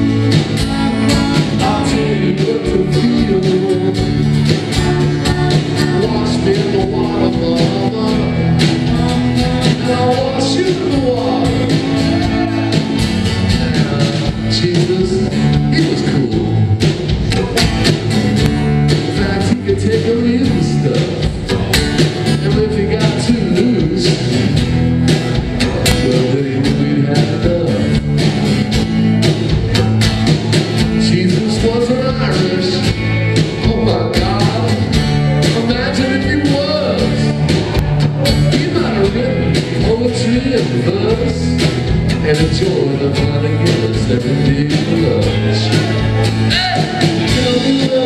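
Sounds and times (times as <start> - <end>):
bass guitar: 0.0 - 48.0
drums: 0.0 - 48.0
electric guitar: 0.0 - 48.0
strummed acoustic guitar: 0.0 - 48.0.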